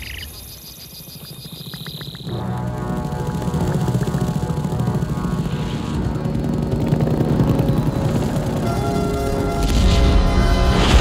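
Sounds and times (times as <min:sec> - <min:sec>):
high insect trill: 0:00.0 - 0:02.4.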